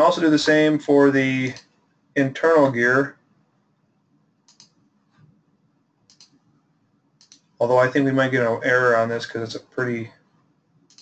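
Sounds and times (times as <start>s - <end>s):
faint low hum: 0.0s - 11.0s
computer mouse clicks: 4.5s - 5.4s, 6.1s - 6.5s, 7.2s - 7.6s.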